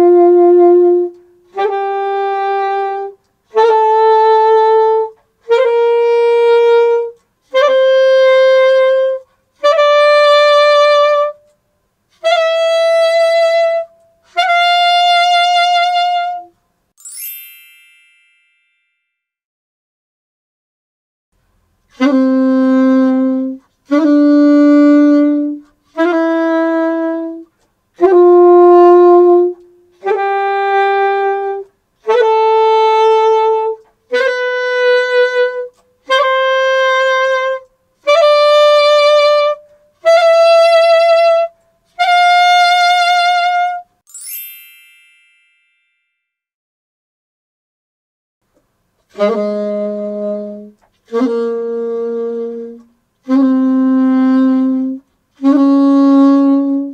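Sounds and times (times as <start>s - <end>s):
bright shimmering chime: 17.0s - 19.0s, 44.1s - 46.2s
bell-like ding: 17.0s - 19.2s, 44.1s - 46.2s.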